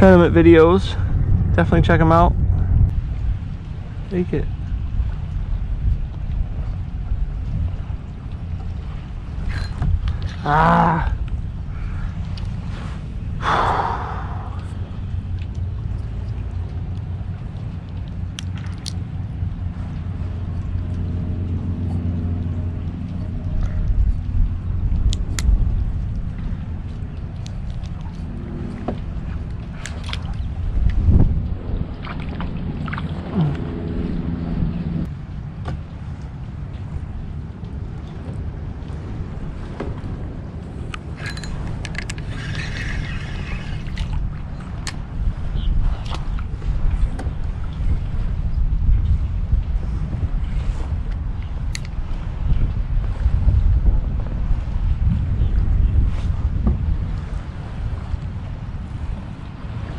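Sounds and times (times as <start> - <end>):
wind rumble on microphone: 0.0 - 59.9
fishing rod and reel clicks: 17.8 - 19.1, 40.9 - 45.0, 51.1 - 52.0.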